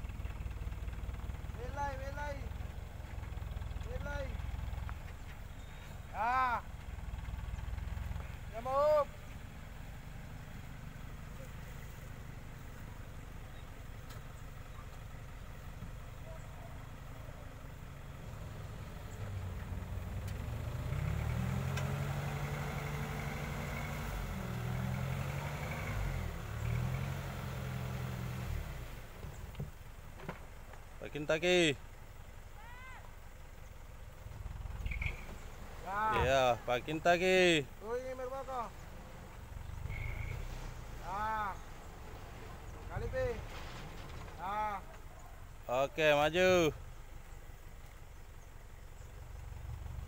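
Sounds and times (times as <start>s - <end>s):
truck engine idling: 0.0s - 50.0s
man calling out: 1.5s - 2.6s, 6.1s - 6.7s, 8.5s - 9.2s, 35.8s - 38.7s, 41.0s - 41.6s, 44.4s - 45.0s
truck engine revving: 6.0s - 14.0s, 15.2s - 29.6s, 34.1s - 45.1s.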